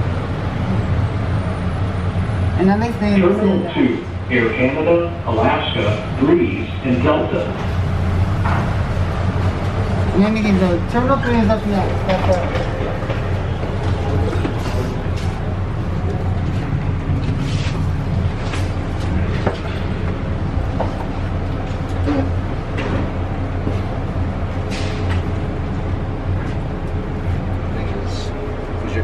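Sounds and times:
train cabin drone: 0:00.0 - 0:29.0.

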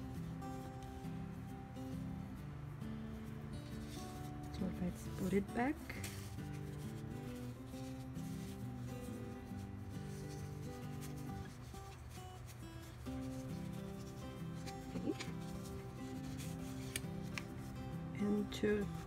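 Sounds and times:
soft background music: 0:00.0 - 0:19.0
paper cards rustling and sliding: 0:03.2 - 0:04.6, 0:05.8 - 0:18.0.

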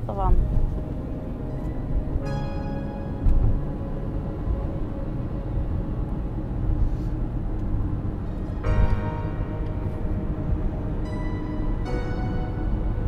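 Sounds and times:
car cabin rumble: 0:00.0 - 0:13.0
soft background music: 0:00.0 - 0:13.0
sustained musical chord: 0:00.0 - 0:13.0.

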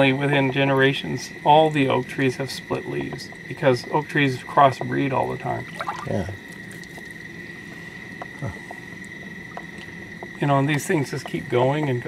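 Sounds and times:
crickets trilling: 0:00.0 - 0:12.0.

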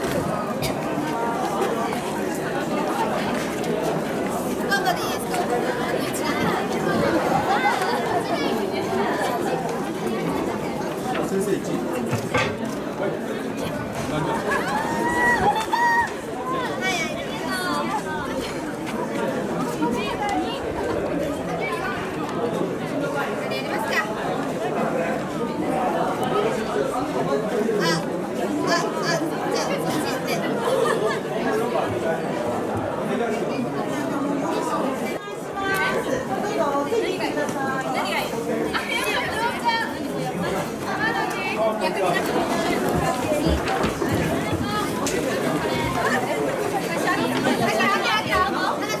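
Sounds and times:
girls chattering: 0:00.0 - 0:12.0, 0:12.8 - 0:49.0.

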